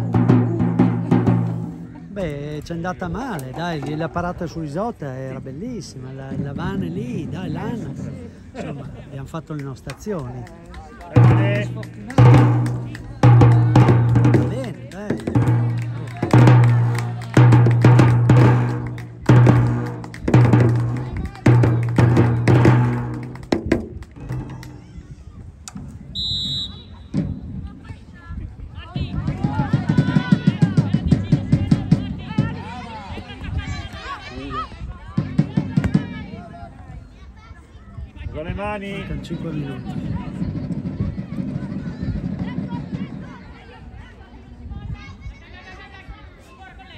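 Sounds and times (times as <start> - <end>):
drum beaten steadily: 0.0 - 2.4, 11.0 - 25.0, 29.0 - 33.0, 35.1 - 36.5
referee's pea whistle blast: 26.1 - 27.1.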